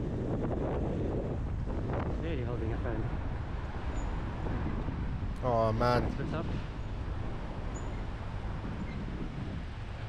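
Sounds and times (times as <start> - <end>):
wind rumble on microphone: 0.0 - 10.0
cars running in traffic: 2.7 - 10.0.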